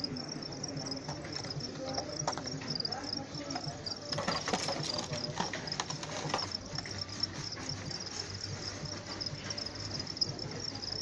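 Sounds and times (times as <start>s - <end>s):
crickets chirping: 0.0s - 11.0s
faint voices: 0.0s - 11.0s.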